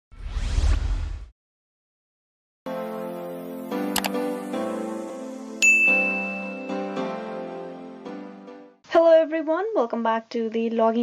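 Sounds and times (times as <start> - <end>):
whoosh with rising sweep: 0.1 - 1.3.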